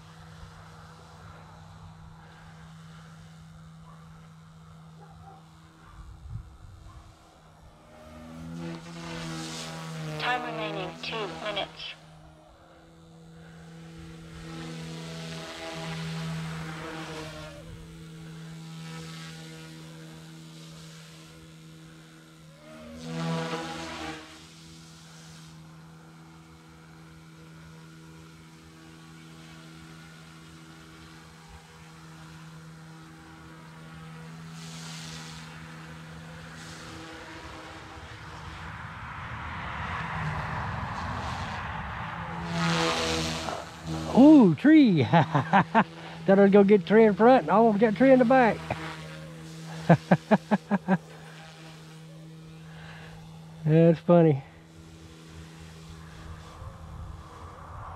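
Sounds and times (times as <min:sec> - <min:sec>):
rc helicopter rotors whining: 0:00.0 - 0:57.9.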